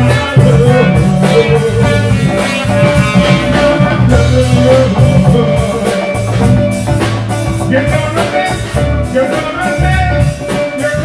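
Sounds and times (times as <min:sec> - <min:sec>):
trumpet: 0:00.0 - 0:06.6
drum kit: 0:00.0 - 0:11.0
guitar: 0:00.0 - 0:11.0
keyboard: 0:00.0 - 0:11.0.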